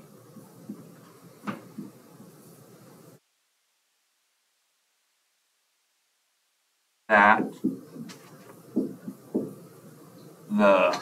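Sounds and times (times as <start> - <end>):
faint knocks: 7.2 - 9.7.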